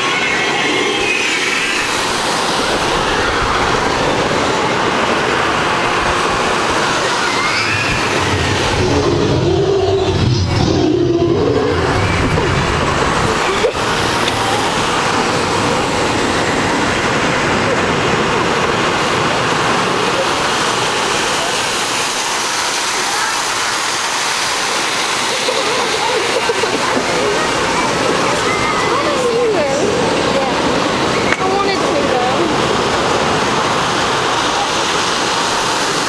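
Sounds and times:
steady rushing noise: 0:00.0 - 0:36.0.

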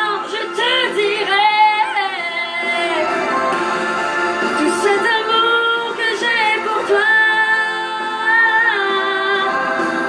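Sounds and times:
woman singing: 0:00.0 - 0:03.5, 0:04.5 - 0:10.0.

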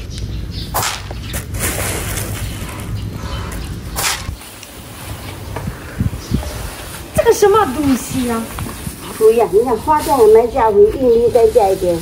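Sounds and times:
plastic bags rustling: 0:01.3 - 0:03.1, 0:06.6 - 0:12.0.

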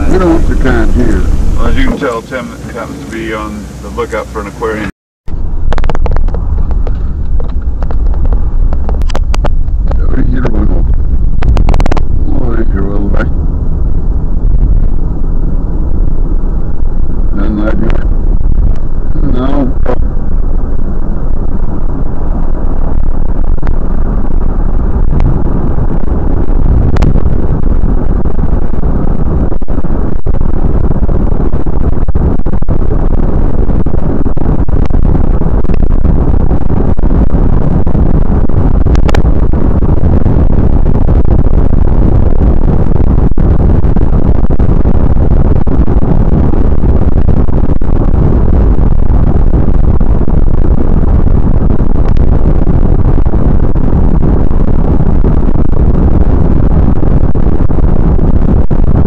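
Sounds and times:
car road and engine noise: 0:00.0 - 0:59.0.

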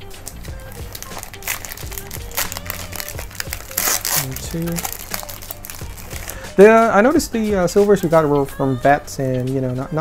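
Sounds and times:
background music: 0:00.0 - 0:10.0
plastic wrapper crinkling and tearing: 0:00.1 - 0:06.5.

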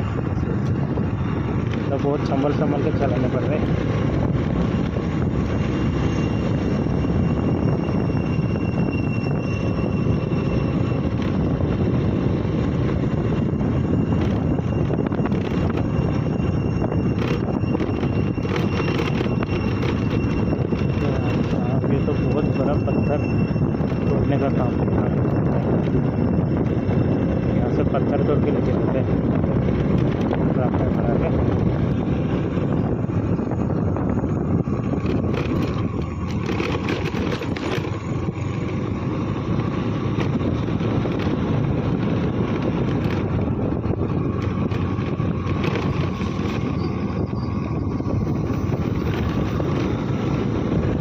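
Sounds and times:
motorcycle engine running: 0:00.0 - 0:51.0
wind rumble on microphone: 0:00.0 - 0:51.0.

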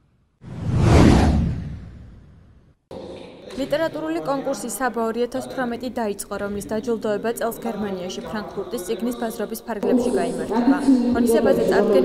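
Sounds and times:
whoosh sound effect: 0:00.4 - 0:02.6.

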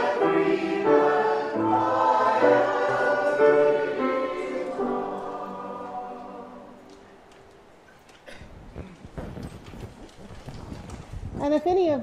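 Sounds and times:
people sitting in wooden pews: 0:00.0 - 0:11.8.

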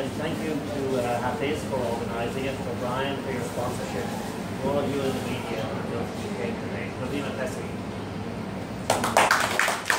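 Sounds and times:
low room murmur: 0:00.0 - 0:09.9
hand clapping: 0:08.8 - 0:09.9.

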